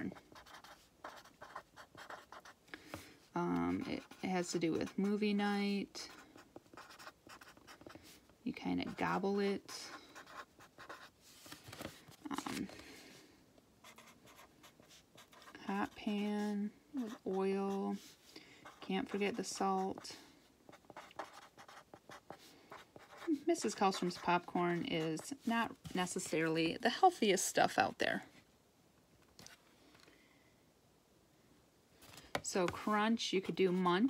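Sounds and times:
pen scratching on paper: 0.1 - 2.6, 6.0 - 7.9, 10.2 - 11.1, 13.8 - 20.1, 20.7 - 26.5.

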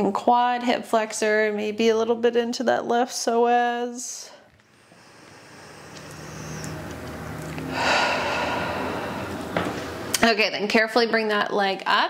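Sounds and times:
woman breathing deeply: 4.6 - 10.1.

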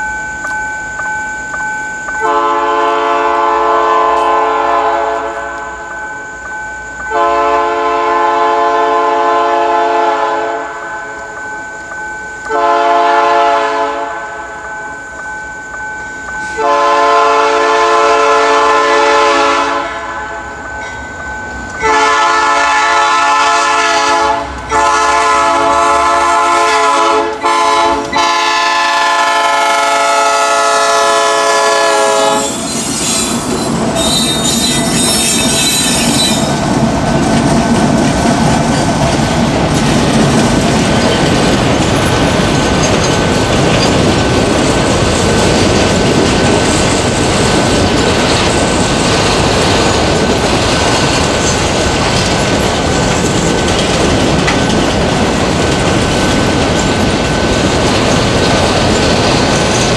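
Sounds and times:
locomotive air horn blasts: 2.2 - 5.8, 7.1 - 10.8, 12.5 - 14.5, 16.6 - 20.4, 21.8 - 33.3
train wheels clattering over rails: 31.1 - 59.9.

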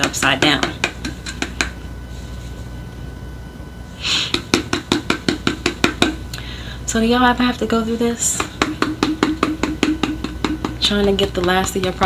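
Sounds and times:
plastic bottle knocking: 8.4 - 12.0.

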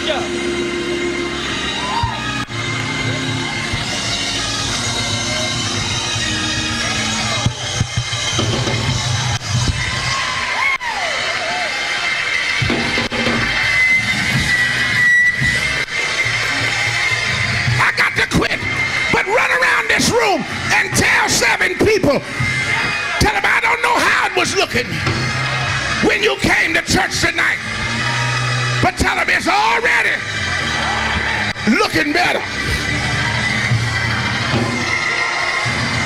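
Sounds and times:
congregation shouting and cheering: 0.0 - 36.0
gospel band playing: 0.0 - 36.0.

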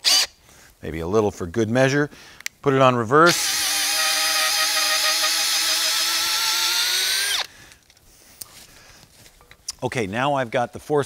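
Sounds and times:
cordless drill motor whine: 0.0 - 0.3, 3.3 - 7.5.

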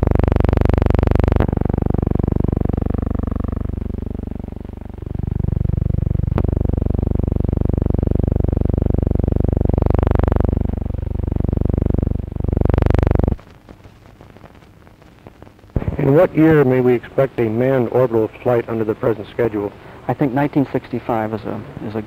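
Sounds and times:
loud steady low drone: 0.0 - 13.4.

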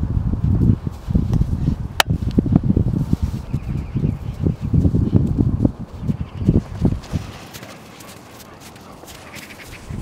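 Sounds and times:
dog paws crunching through snow: 3.0 - 10.0.

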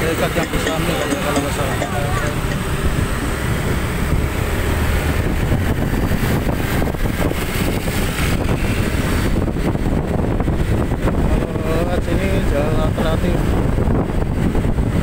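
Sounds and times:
motorcycle engine rumble: 0.0 - 15.0
road noise: 0.0 - 15.0
wind buffeting microphone: 0.0 - 15.0.

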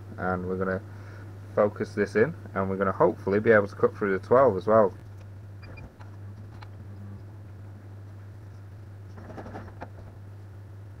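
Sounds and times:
low mains hum of machine: 0.0 - 11.0.

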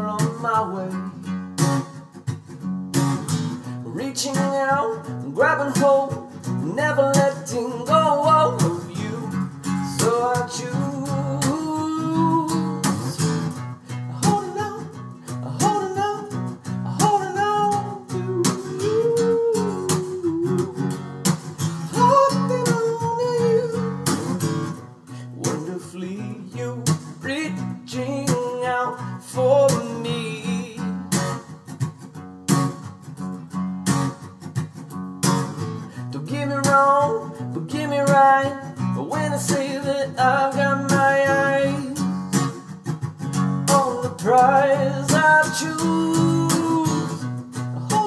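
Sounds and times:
man singing: 0.0 - 1.4, 3.6 - 31.5, 35.8 - 42.7, 43.6 - 48.0
acoustic guitar strumming: 0.0 - 48.0.

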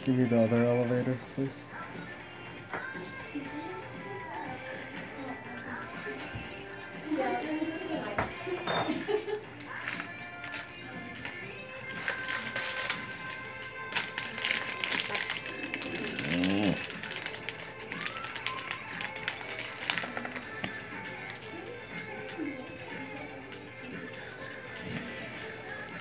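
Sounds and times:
background music: 0.0 - 26.0.

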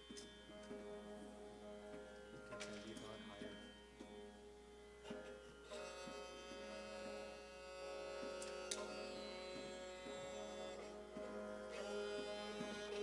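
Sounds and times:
bowed string instrument: 0.0 - 13.0
harmonium: 0.0 - 13.0.

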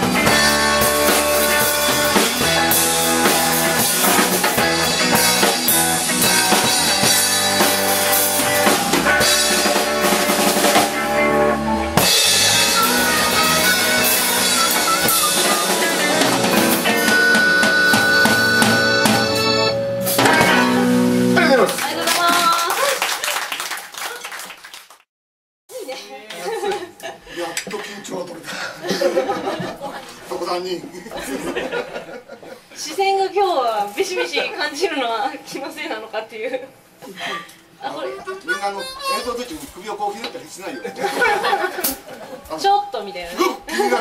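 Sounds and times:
live rock band playing: 0.0 - 22.5, 37.8 - 39.8, 40.8 - 42.4
harmonica held note: 11.7 - 21.3, 38.0 - 39.5.

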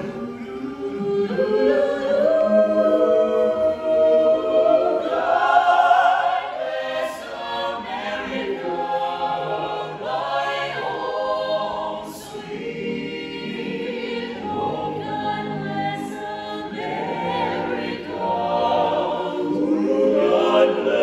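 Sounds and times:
a cappella choir singing: 0.0 - 21.0.

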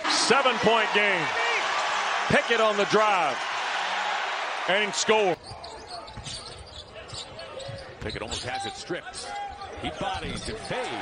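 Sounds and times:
sneaker squeaks: 5.4 - 11.0.

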